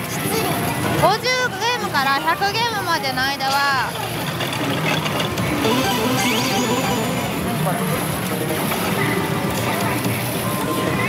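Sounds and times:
slot machine music and effects: 0:05.5 - 0:07.8.

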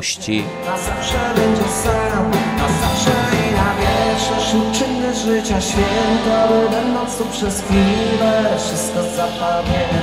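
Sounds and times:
live rock band: 0:00.0 - 0:10.0
male lead vocal: 0:00.0 - 0:10.0.

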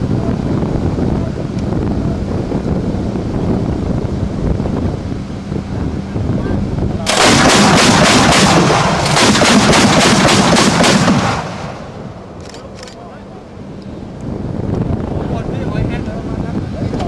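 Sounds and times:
anti-aircraft guns automatic fire: 0:07.0 - 0:11.8.

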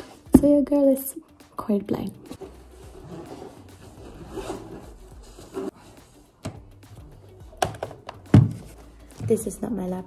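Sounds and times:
soft scrapes: 0:02.3 - 0:06.2
cloth rubbing and rustling: 0:02.3 - 0:06.3.

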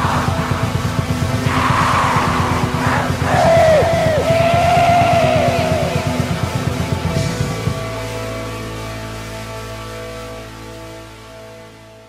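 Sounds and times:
rapid dense drumming: 0:00.0 - 0:07.8
distorted guitar: 0:00.0 - 0:12.0.

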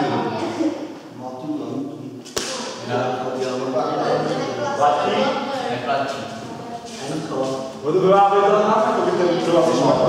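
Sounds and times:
man talking in a hall: 0:01.0 - 0:10.0.

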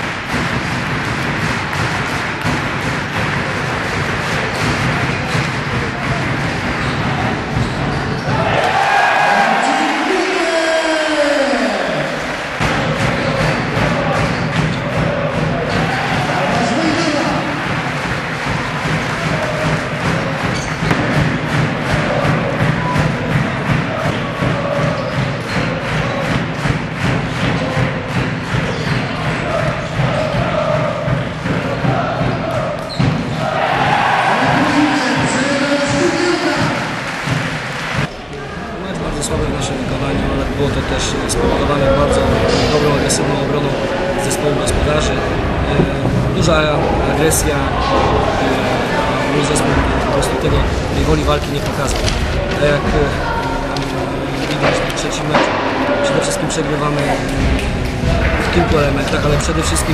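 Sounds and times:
basketball bouncing on court: 0:00.0 - 0:08.8, 0:12.6 - 0:33.4
steady rhythmic beat: 0:00.0 - 0:38.1, 0:38.9 - 0:59.9
crowd voices: 0:00.0 - 0:59.9
shoe squeaks and thuds: 0:06.8 - 0:08.5.

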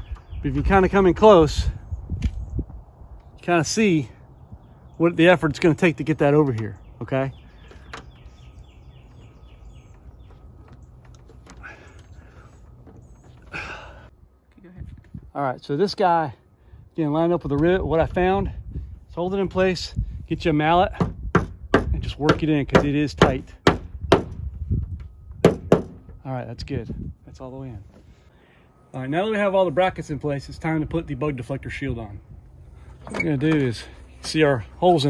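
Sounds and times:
songbird singing: 0:00.0 - 0:35.0.

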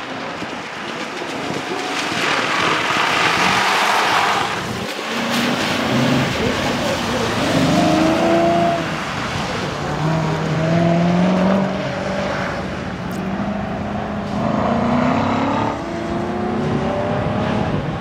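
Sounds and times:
tyres hissing on wet pavement: 0:00.0 - 0:10.6
car engine revving: 0:01.3 - 0:18.0.

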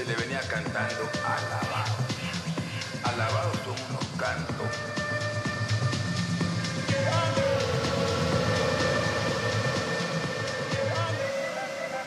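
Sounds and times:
four-on-the-floor dance beat: 0:00.0 - 0:12.0
held synth tones: 0:05.3 - 0:12.0.

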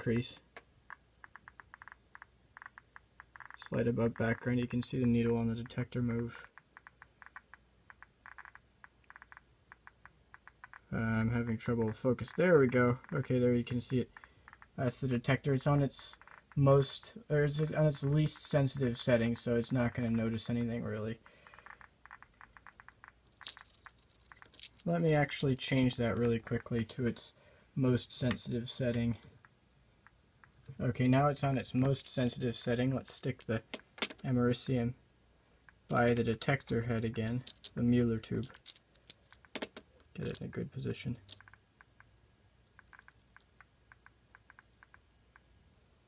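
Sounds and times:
geiger counter clicking: 0:00.5 - 0:04.4, 0:05.0 - 0:13.2, 0:14.1 - 0:14.8, 0:16.2 - 0:16.6, 0:21.5 - 0:25.6, 0:41.2 - 0:45.5.

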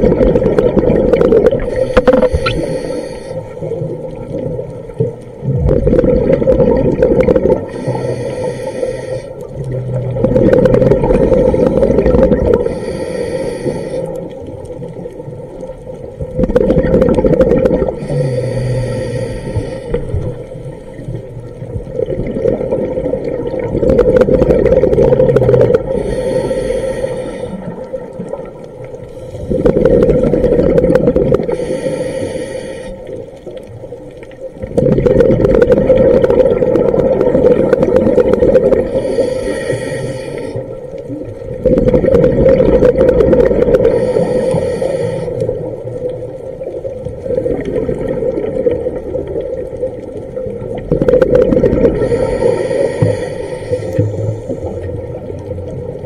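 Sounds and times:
exhaled bubbles rushing: 0:00.0 - 0:02.8, 0:03.5 - 0:07.9, 0:09.4 - 0:12.8, 0:14.2 - 0:18.2, 0:19.9 - 0:26.1, 0:27.6 - 0:31.7, 0:33.4 - 0:39.2, 0:40.6 - 0:44.4, 0:45.4 - 0:53.2
regulator inhalation hiss: 0:01.6 - 0:03.6, 0:07.7 - 0:09.5, 0:11.1 - 0:14.3, 0:18.0 - 0:21.1, 0:25.9 - 0:27.8, 0:29.0 - 0:29.7, 0:31.5 - 0:33.2, 0:38.8 - 0:40.9, 0:43.8 - 0:45.7, 0:52.0 - 0:54.9.

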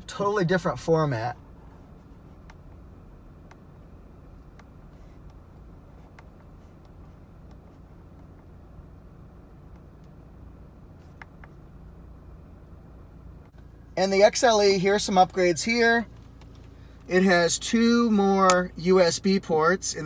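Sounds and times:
low hum inside car: 0:00.0 - 0:20.0.

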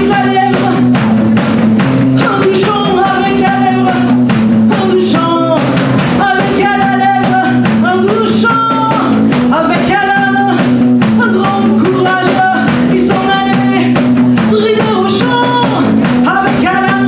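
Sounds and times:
woman singing into a microphone: 0:00.0 - 0:01.1, 0:02.1 - 0:17.0
bass line: 0:00.0 - 0:17.0
drum kit beats: 0:00.0 - 0:17.0.

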